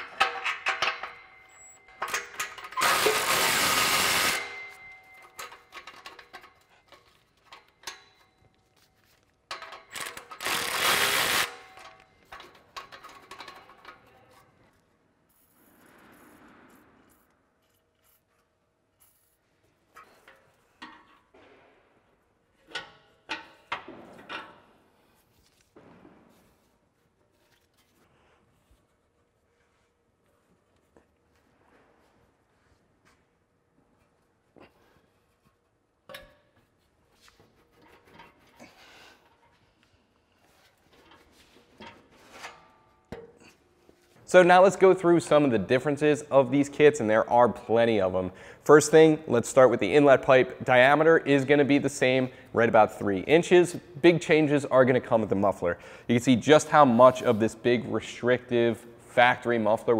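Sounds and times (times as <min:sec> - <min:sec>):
electric ratchet spinning a nut: 0:02.8 - 0:04.5, 0:09.9 - 0:11.6.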